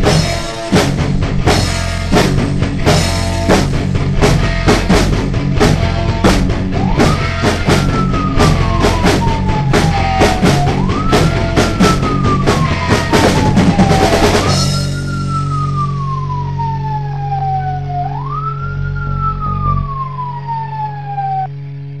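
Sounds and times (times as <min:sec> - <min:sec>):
rock drums crashing: 0:00.0 - 0:16.3
held low chord: 0:00.0 - 0:22.0
wailing siren: 0:05.6 - 0:22.0.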